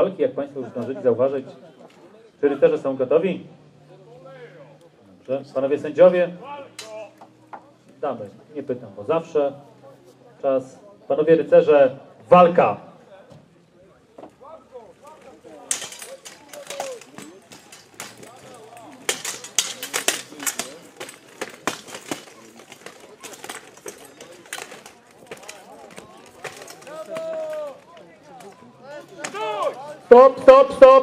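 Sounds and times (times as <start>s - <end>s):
faint voices of onlookers: 0.0s - 31.0s
swords and armour clashing: 6.8s - 7.0s, 15.3s - 27.8s.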